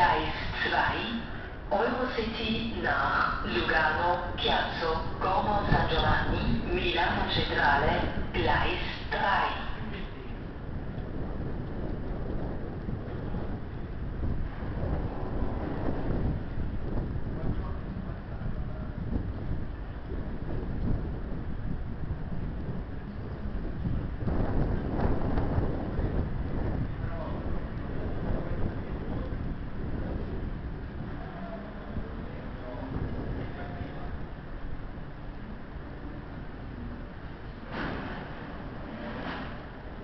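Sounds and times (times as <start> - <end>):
electric locomotive rumbling: 0.0 - 40.0
wind buffeting microphone: 0.0 - 40.0.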